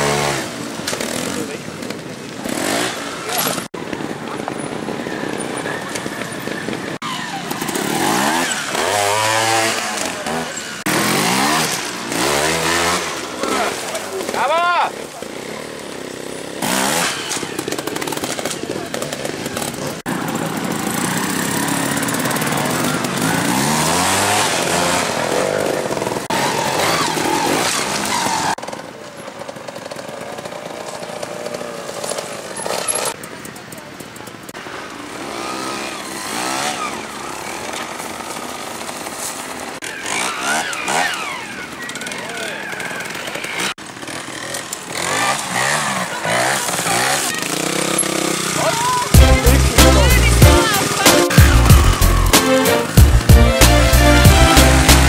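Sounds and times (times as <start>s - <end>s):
motorcycle engines revving: 0.0s - 55.0s.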